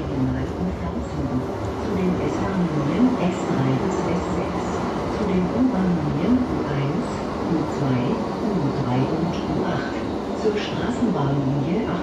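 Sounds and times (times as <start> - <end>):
tram rolling rumble: 0.0 - 12.0.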